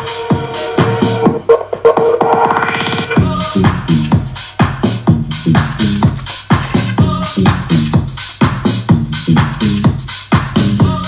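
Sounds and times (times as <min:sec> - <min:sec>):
kick drum: 0:00.0 - 0:11.0.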